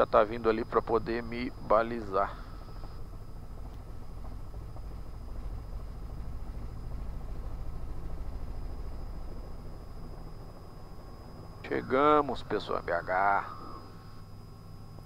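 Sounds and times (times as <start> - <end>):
helicopter engine and rotor drone: 0.0 - 15.0.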